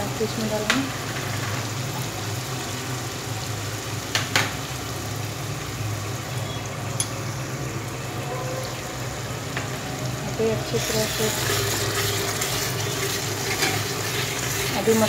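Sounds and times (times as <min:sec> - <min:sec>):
masala bubbling and sizzling in oil: 0:00.0 - 0:15.0.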